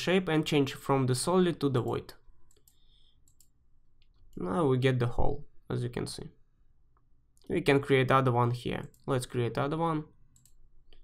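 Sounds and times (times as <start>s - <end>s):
faint computer mouse clicks: 1.9s - 4.4s, 10.3s - 11.0s.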